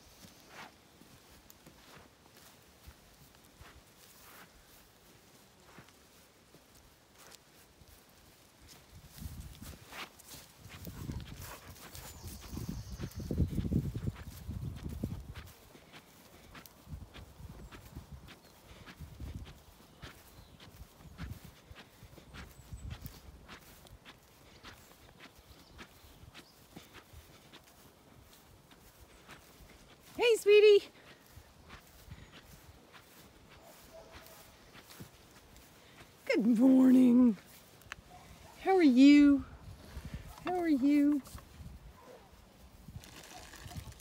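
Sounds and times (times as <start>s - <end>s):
footsteps on grass: 0.0s - 44.0s.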